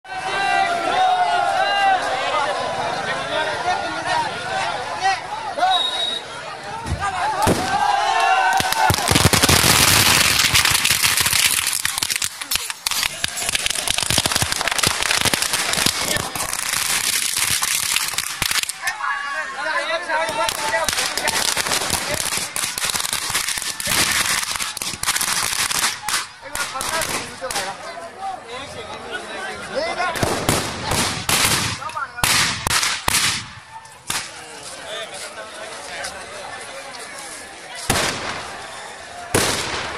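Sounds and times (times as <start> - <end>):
crowd voices: 0.0 - 39.9
firecrackers crackling: 7.0 - 19.4, 20.0 - 27.9, 30.1 - 35.8, 37.0 - 39.9.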